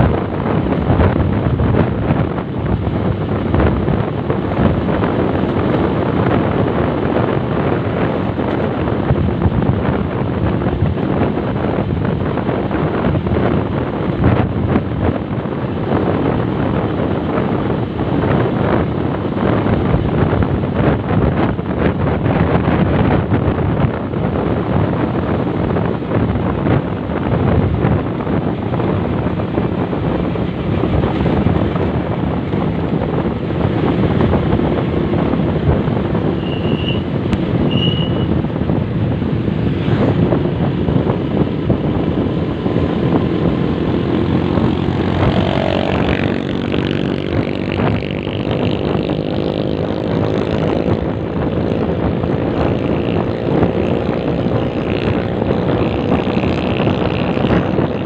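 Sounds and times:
motorcycle engine running: 0:00.0 - 0:58.0
wind noise on microphone: 0:00.0 - 0:58.0.

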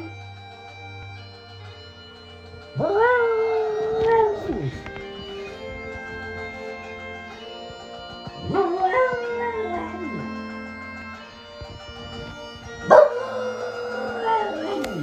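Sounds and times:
bagpipe music: 0:00.0 - 0:15.0
dog howling: 0:02.8 - 0:04.9, 0:08.4 - 0:10.4, 0:12.8 - 0:15.0.

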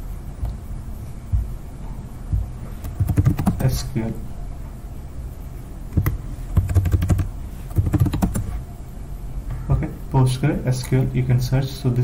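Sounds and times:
computer keyboard typing: 0:02.8 - 0:03.6, 0:06.0 - 0:08.4.

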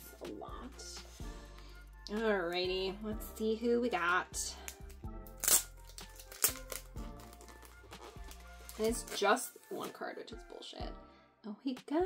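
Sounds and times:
quiet background music: 0:00.0 - 0:12.0
sharp crackle: 0:04.6 - 0:09.8
plastic sleeve crinkling: 0:04.6 - 0:10.0.

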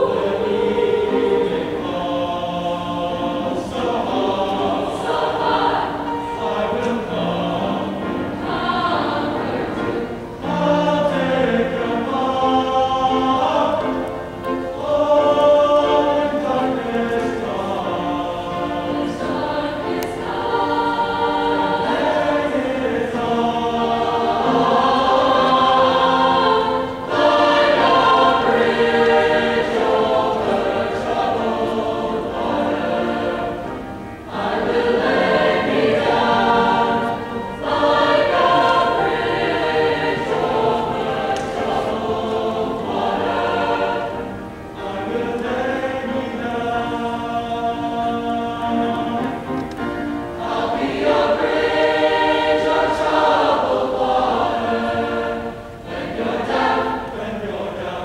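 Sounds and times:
choir singing in harmony: 0:00.0 - 0:58.0.

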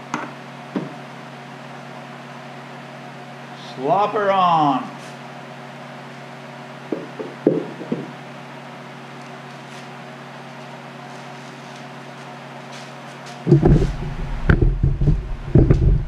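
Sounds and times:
steady machine hum: 0:13.4 - 0:16.0
wooden box knocking: 0:13.5 - 0:16.0.

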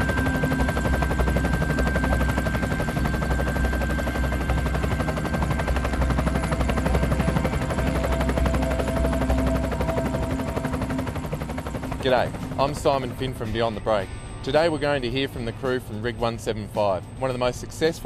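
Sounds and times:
thin steady whine: 0:00.0 - 0:18.0.

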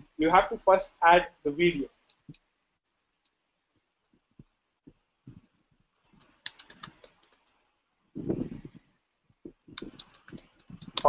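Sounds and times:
faint keyboard typing: 0:04.0 - 0:07.7, 0:09.5 - 0:11.0.

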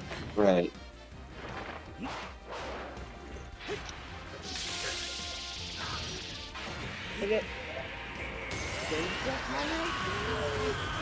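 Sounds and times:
swishing strikes and impacts: 0:01.4 - 0:07.5.

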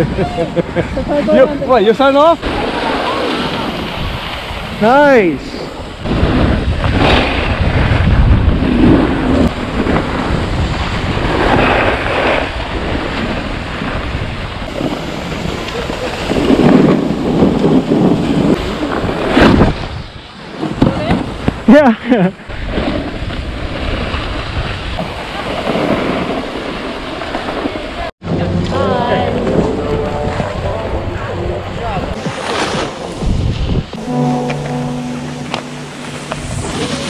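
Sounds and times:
snowboard scraping over snow: 0:01.1 - 0:21.5, 0:22.5 - 0:28.1
wind on microphone: 0:02.4 - 0:21.7, 0:28.3 - 0:37.0
background music with held notes: 0:28.6 - 0:37.0.

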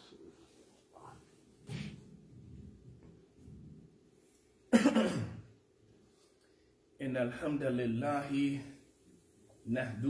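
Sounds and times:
man coughing: 0:04.7 - 0:05.5.

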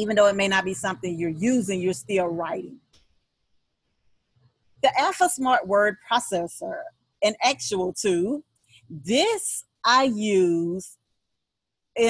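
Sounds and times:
woman speaking: 0:00.0 - 0:02.8, 0:04.8 - 0:10.9.

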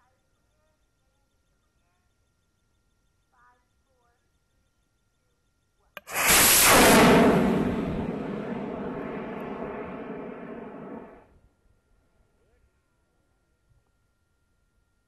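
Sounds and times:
rocket motor roar: 0:06.0 - 0:11.1.

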